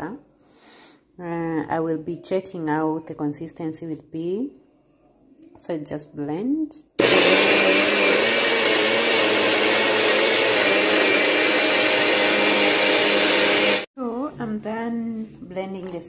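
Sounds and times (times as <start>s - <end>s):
blender whirring: 7.0s - 13.9s.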